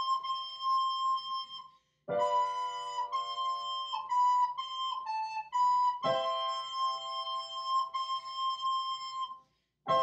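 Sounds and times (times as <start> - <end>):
flute holding a high note: 0.0 - 10.0.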